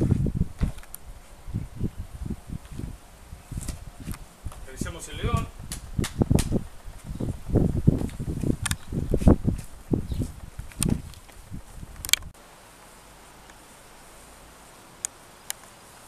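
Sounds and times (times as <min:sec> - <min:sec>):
wind rumble on microphone: 0:00.0 - 0:12.4
footsteps on rocky gravelly ground: 0:03.5 - 0:12.0.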